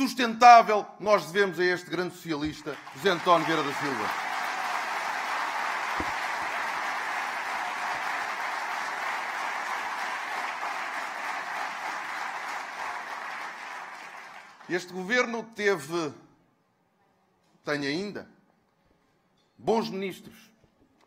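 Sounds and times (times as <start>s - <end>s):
audience applauding: 2.4s - 14.9s.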